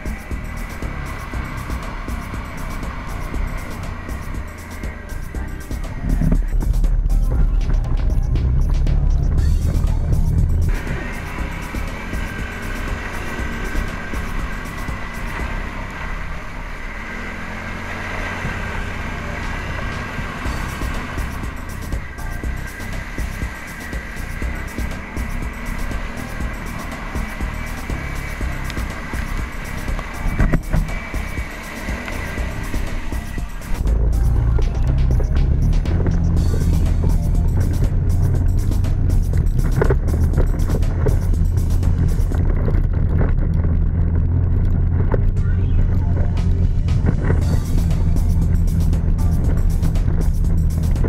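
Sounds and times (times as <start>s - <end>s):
atv engine running: 0.0s - 51.0s.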